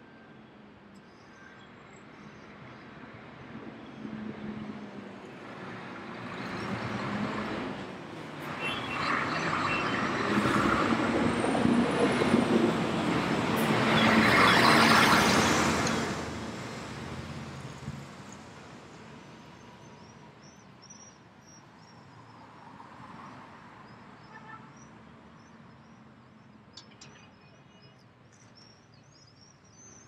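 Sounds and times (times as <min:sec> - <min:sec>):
street traffic: 0:00.0 - 0:30.0
diesel truck driving past: 0:06.2 - 0:18.2.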